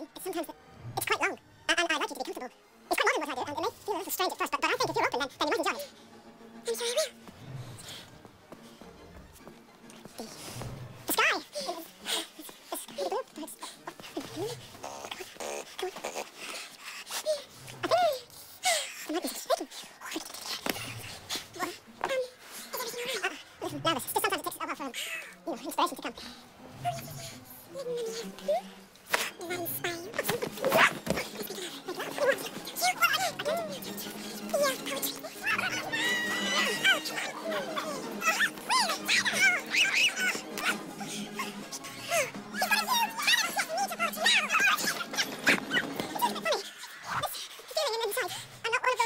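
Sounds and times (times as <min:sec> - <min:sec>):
background music: 0:00.0 - 0:49.0
sped-up squeaky yelps: 0:34.6 - 0:47.3
woman moaning and gasping: 0:35.3 - 0:42.6.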